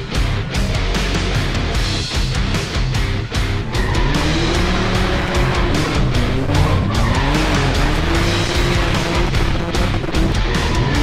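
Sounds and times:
loud rock music: 0:00.0 - 0:11.0
engine revving: 0:00.8 - 0:11.0
tyre squeal: 0:03.7 - 0:08.1.

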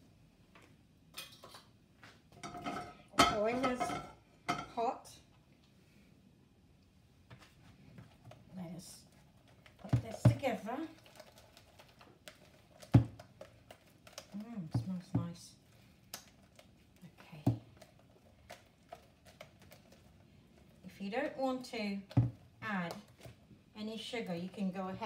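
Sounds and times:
spoon stirring batter in bowl: 0:07.4 - 0:25.0.

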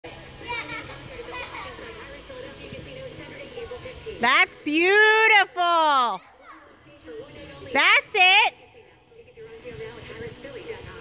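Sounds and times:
children calling and chattering: 0:00.4 - 0:04.6.

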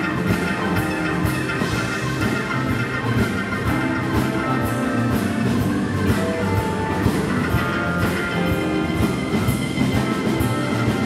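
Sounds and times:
drum beat and cymbals: 0:00.0 - 0:11.0
live rock band playing: 0:00.0 - 0:11.0.

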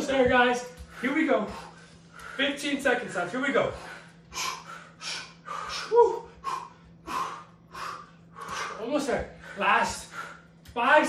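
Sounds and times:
heavy breathing: 0:00.6 - 0:10.8
person gasping: 0:03.8 - 0:10.5.

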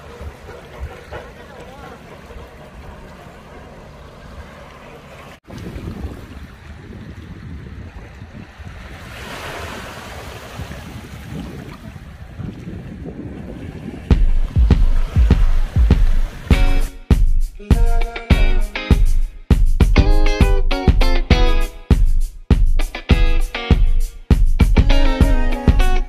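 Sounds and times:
wind buffeting microphone: 0:05.4 - 0:16.7
waves lapping over pebbles: 0:08.7 - 0:11.9.

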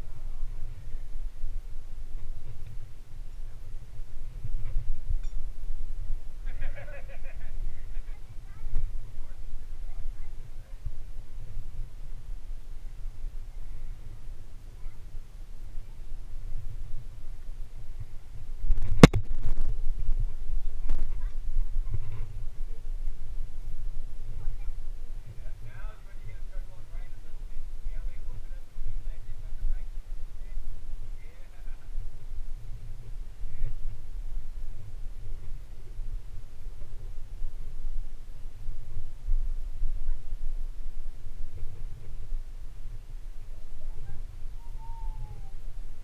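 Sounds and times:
low rumble on microphone: 0:00.0 - 0:46.0
faint voices: 0:06.0 - 0:18.4, 0:20.2 - 0:45.8.

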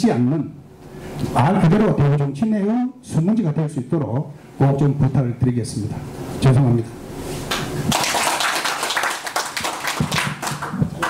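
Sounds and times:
people applauding: 0:07.5 - 0:11.0.

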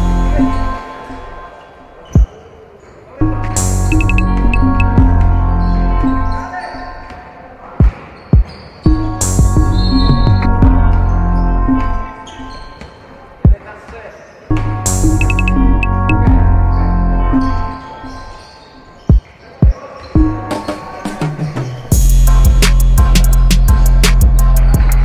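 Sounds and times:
background music: 0:00.0 - 0:02.4, 0:03.1 - 0:07.1, 0:08.9 - 0:12.8, 0:14.5 - 0:25.0.

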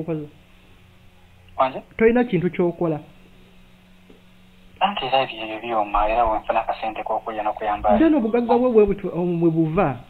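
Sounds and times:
person talking: 0:04.8 - 0:10.0.

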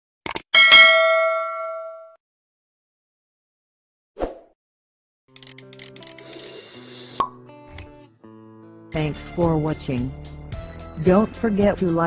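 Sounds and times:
notification bell ding: 0:00.6 - 0:02.2.

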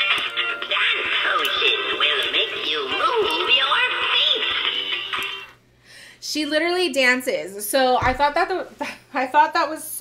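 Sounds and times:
tinny singing through small speaker: 0:00.0 - 0:05.5.

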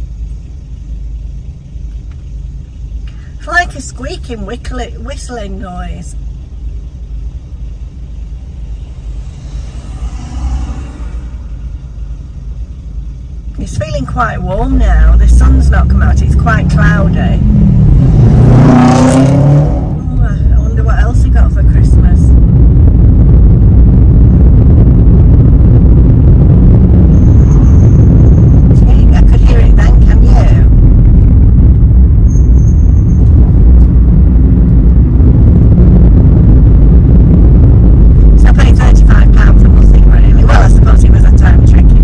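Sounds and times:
car engine and tyres rumbling: 0:00.0 - 0:42.0.

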